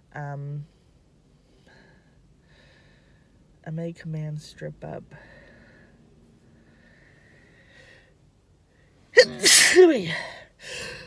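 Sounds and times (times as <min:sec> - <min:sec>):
woman sneezing: 0:09.2 - 0:10.4.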